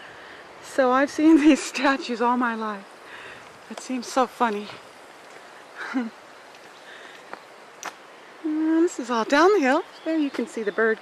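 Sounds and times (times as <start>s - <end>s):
outdoor background hiss: 0.0s - 11.0s
woman's voice: 0.6s - 2.9s, 3.7s - 4.8s, 8.4s - 11.0s.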